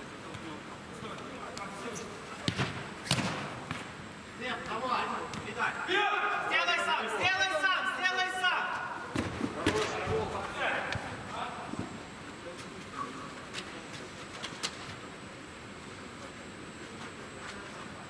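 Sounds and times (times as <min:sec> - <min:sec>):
football being kicked: 0:02.4 - 0:03.9
players shouting: 0:05.5 - 0:09.1.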